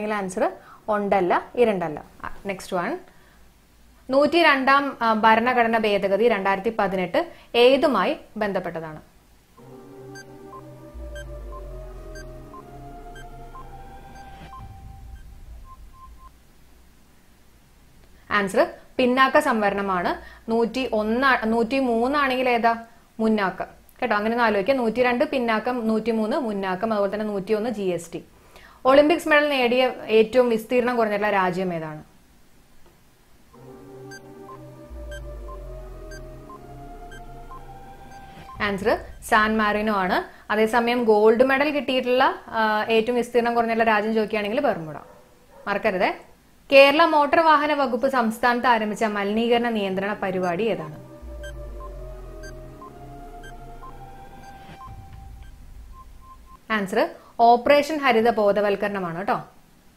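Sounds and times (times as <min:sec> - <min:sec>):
tense synthesized music: 0:09.6 - 0:16.4, 0:33.6 - 0:40.5, 0:49.9 - 0:56.7
short electronic beeps: 0:10.1 - 0:16.4, 0:33.6 - 0:39.9, 0:50.4 - 0:56.6
deep bass: 0:10.2 - 0:16.4, 0:34.1 - 0:40.1, 0:51.0 - 0:56.6.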